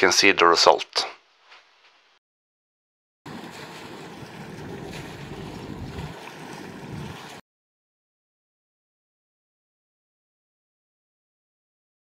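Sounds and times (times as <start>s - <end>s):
water churning in propeller wash: 3.3s - 7.4s.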